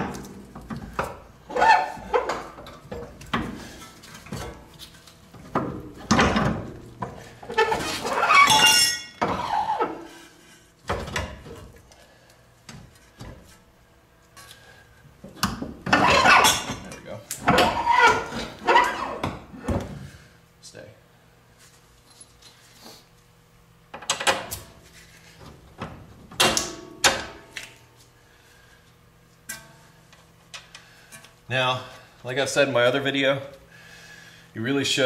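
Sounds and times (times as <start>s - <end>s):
metal axle knocks and clinks: 7.6s - 9.6s.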